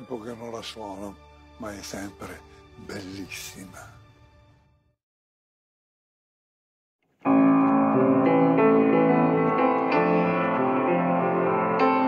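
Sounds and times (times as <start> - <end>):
piano-led music: 0.0 - 4.2, 7.2 - 12.0.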